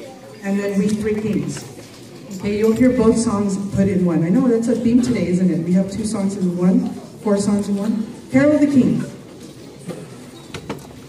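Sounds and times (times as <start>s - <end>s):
crowded hall background noise: 0.0s - 11.0s.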